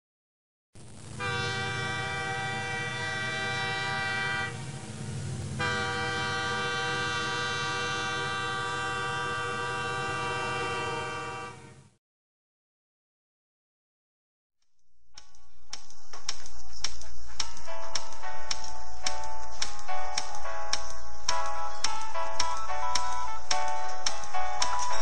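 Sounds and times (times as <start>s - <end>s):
moving train rumble: 0.8s - 11.8s, 15.2s - 25.0s
train whistle blasts: 1.2s - 11.9s.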